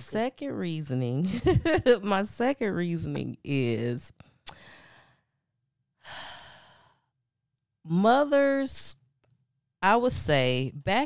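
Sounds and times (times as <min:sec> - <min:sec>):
woman breathing: 0:04.2 - 0:05.4, 0:06.0 - 0:07.2
sighing breath: 0:06.0 - 0:07.1.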